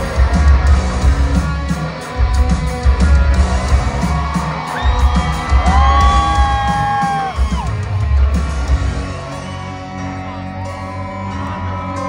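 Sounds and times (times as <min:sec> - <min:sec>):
crowd yelling and whooping: 0:00.0 - 0:12.0
live rock band playing: 0:00.0 - 0:12.0.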